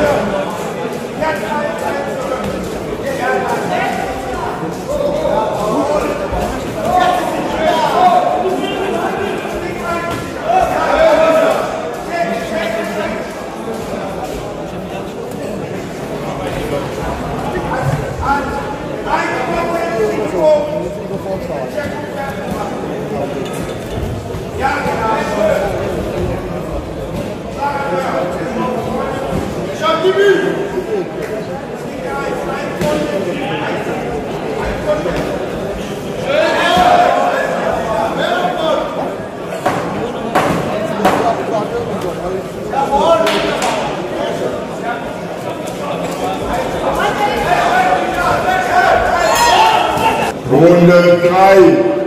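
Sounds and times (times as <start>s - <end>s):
murmur of spectators' voices: 0.0s - 52.0s.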